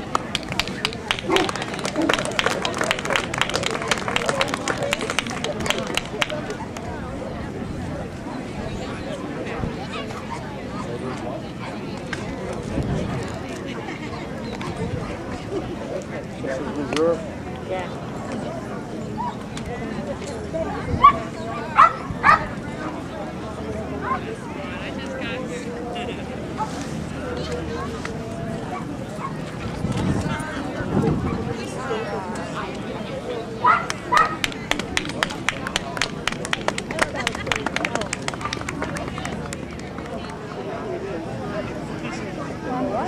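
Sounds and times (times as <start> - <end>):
scattered hand clapping: 0.0 - 6.9, 33.6 - 40.6
crowd chatter: 0.0 - 43.0
dog barking: 33.6 - 34.4.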